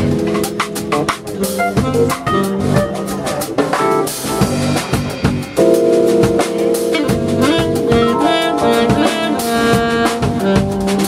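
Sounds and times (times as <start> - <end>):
drum kit: 0.0 - 11.0
electric bass: 0.0 - 11.0
keyboards: 0.0 - 11.0.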